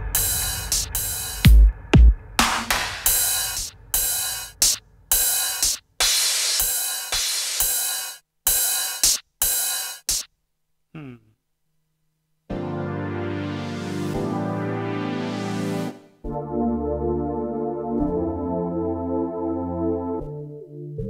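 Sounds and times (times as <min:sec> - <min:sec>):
drum machine cymbal hits: 0:00.0 - 0:10.3.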